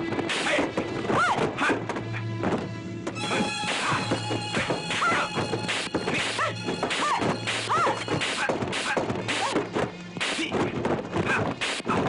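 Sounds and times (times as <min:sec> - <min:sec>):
film soundtrack music: 0:00.0 - 0:11.2.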